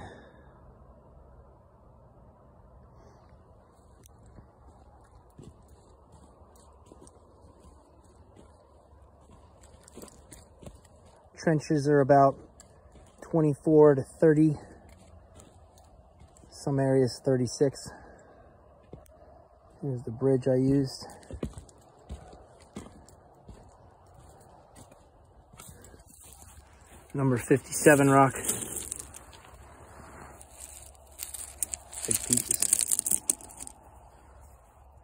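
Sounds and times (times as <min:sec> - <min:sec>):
footsteps on dirt and gravel: 0:03.8 - 0:34.7
footsteps on a wooden board: 0:21.2 - 0:26.5.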